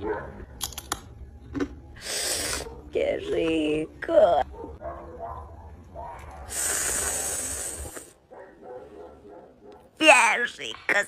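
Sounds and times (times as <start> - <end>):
person slurping a drink: 6.5 - 8.1.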